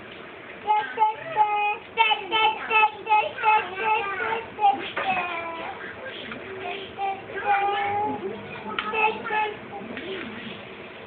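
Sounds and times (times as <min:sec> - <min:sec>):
child singing: 0:00.6 - 0:05.8, 0:06.5 - 0:10.0.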